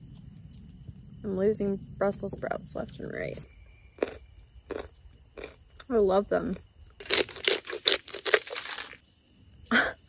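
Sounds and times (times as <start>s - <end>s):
pepper grinder crunching peppercorns: 4.0s - 9.0s.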